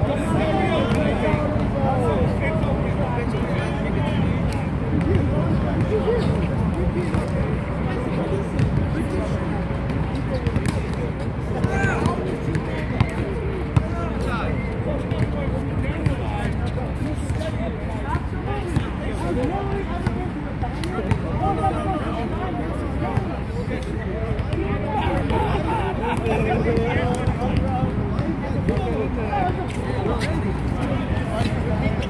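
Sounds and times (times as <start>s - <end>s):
basketball bouncing on asphalt: 8.6s - 8.9s.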